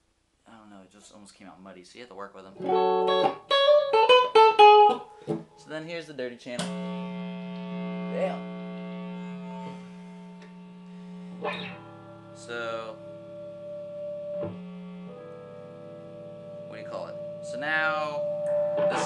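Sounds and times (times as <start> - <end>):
distorted electric guitar: 2.6 - 5.6, 6.6 - 19.0.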